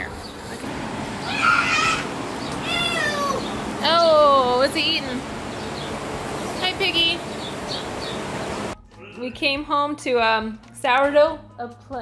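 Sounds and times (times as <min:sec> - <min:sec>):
outdoor ambience hiss: 0:00.0 - 0:08.8
woman's voice: 0:03.8 - 0:05.2, 0:06.6 - 0:07.2, 0:09.2 - 0:12.0.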